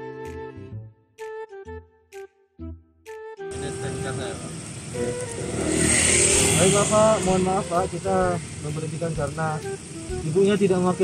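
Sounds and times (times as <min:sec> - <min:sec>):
passing vehicles rushing: 0:03.5 - 0:11.0.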